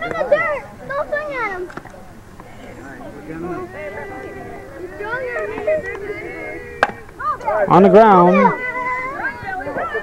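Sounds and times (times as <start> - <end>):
background voices: 0.0 - 10.0.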